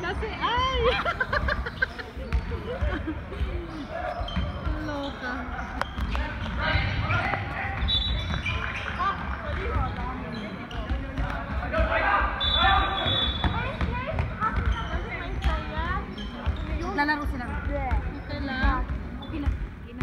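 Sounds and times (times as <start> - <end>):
sneakers squeaking: 0.0 - 20.0
basketball bouncing on wooden court: 1.7 - 7.1, 7.7 - 11.7, 13.4 - 20.0.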